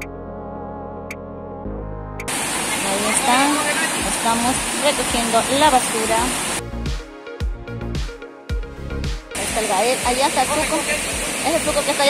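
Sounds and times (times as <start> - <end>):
background music with low beats: 0.0 - 2.3, 6.6 - 11.8
small waterfall rushing: 2.3 - 6.6, 9.4 - 12.0.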